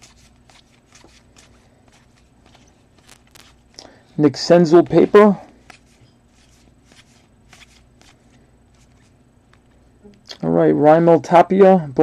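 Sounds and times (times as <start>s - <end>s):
trading cards clicking and sliding: 0.0s - 3.8s, 5.0s - 9.7s.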